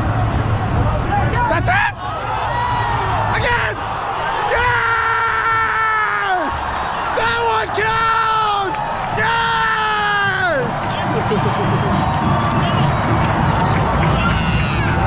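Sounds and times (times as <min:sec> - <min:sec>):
stadium crowd cheering: 0:00.0 - 0:15.0.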